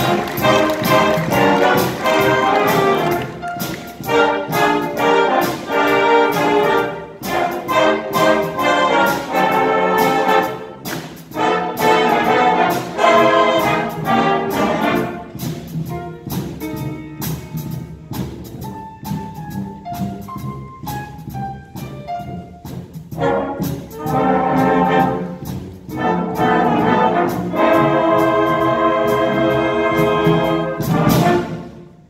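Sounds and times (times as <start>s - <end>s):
concert band of saxophones and brass: 0.0s - 32.0s.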